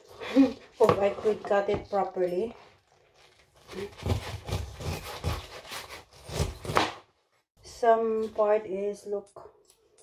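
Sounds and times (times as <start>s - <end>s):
knife sawing through pineapple rind: 3.6s - 6.9s.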